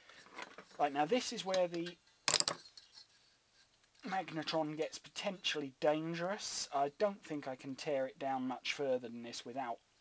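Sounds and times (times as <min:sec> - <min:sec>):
metal tools clattering on table: 0:01.8 - 0:03.1.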